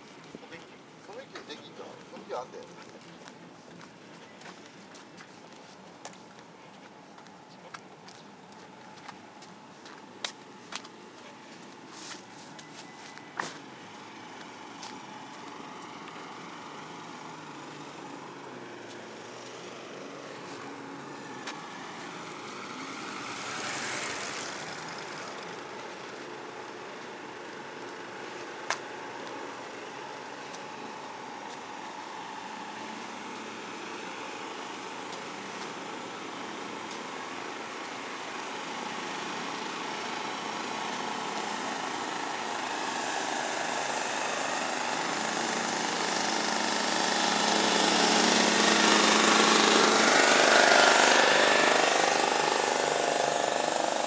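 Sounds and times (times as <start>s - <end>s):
vehicle engine: 0.0s - 54.0s
motorcycle engine: 12.0s - 54.0s.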